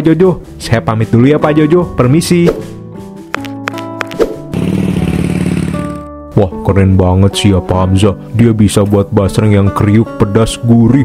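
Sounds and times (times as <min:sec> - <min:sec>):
background music: 0:00.0 - 0:11.0
scooter engine putter: 0:04.6 - 0:06.0.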